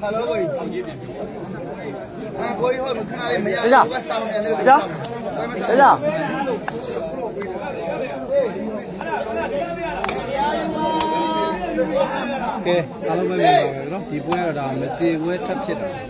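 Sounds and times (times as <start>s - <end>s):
crowd chattering and calling out: 0.0s - 16.0s.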